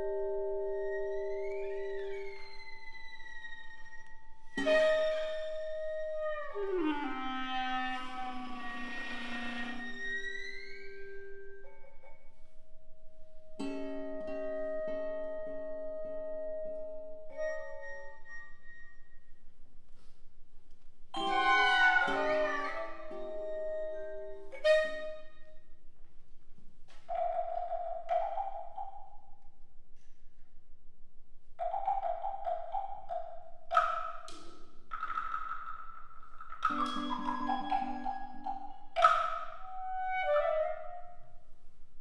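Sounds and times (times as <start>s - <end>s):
clarinet and strings playing: 0.0s - 11.4s, 21.2s - 25.6s, 36.6s - 41.4s.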